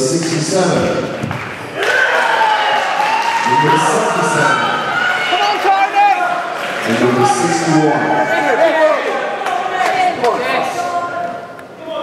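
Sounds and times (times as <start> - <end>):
spectators shouting and cheering: 1.2 - 12.0
loud shout: 1.8 - 12.0.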